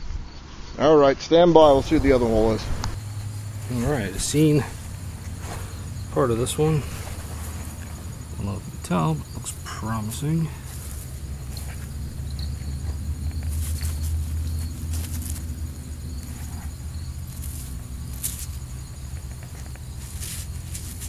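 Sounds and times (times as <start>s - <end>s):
crickets trilling: 1.6s - 21.0s
low microphone rumble: 1.6s - 21.0s
soil and roots crackling: 1.6s - 21.0s.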